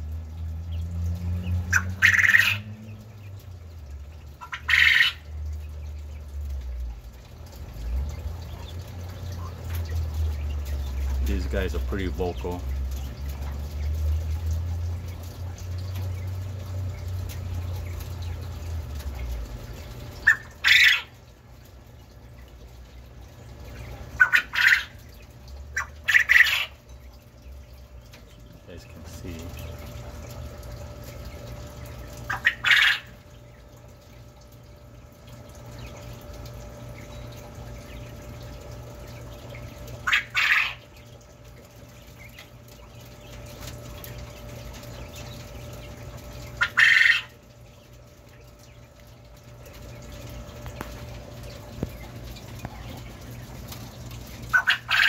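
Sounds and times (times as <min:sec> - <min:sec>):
low steady hum: 0:00.0 - 0:55.0
quail calling: 0:01.7 - 0:02.7, 0:04.4 - 0:05.2, 0:20.2 - 0:21.2, 0:24.1 - 0:25.0, 0:25.7 - 0:26.8, 0:32.3 - 0:33.2, 0:40.0 - 0:40.9, 0:46.6 - 0:47.4, 0:54.5 - 0:55.0.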